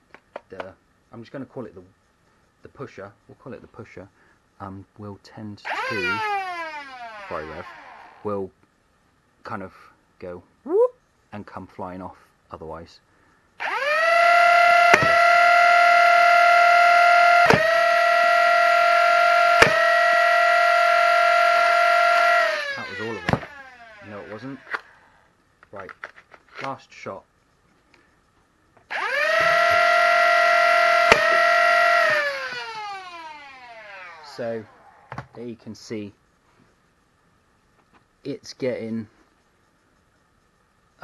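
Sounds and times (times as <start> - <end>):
toy blaster motor whine: 5.7 - 8.3, 13.6 - 25.2, 28.9 - 35.2
sharp clicks: 22.6 - 25.0, 31.0 - 35.3.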